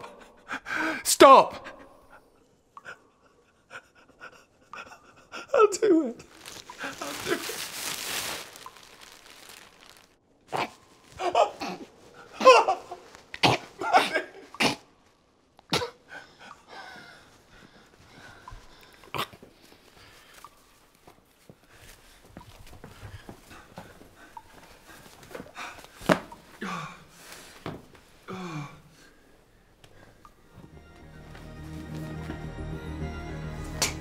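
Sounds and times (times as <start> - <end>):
man gasping and breathing: 0.3 - 1.1.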